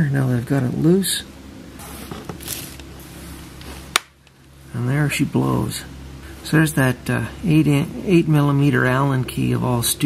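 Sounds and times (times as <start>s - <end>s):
low hum: 0.0s - 10.0s
faint handling noise: 1.8s - 4.6s.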